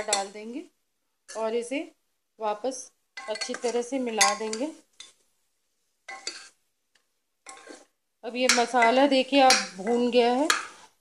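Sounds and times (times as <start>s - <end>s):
metal spoon scraping a pot: 3.2s - 5.2s, 6.1s - 6.6s, 7.4s - 11.0s.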